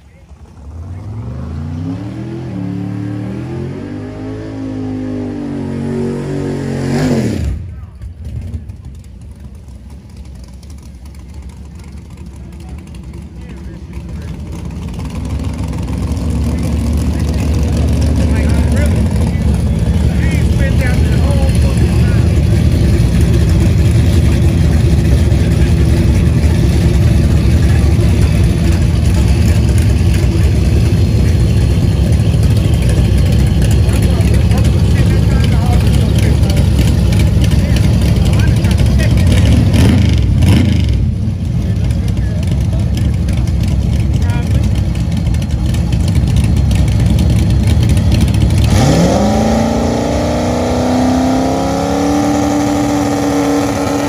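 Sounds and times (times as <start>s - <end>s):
car engine rumbling and revving: 0.0s - 54.0s.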